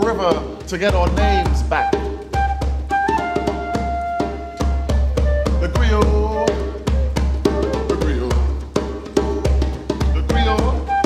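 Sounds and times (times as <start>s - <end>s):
djembe strokes: 0.0s - 11.0s
flute playing: 1.6s - 8.5s, 10.0s - 11.0s.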